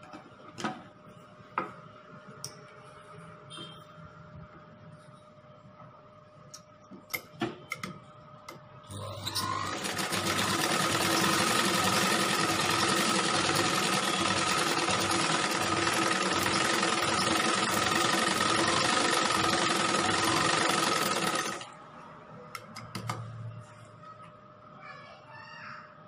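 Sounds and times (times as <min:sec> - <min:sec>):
sewing machine stitching fabric: 0:08.9 - 0:21.7.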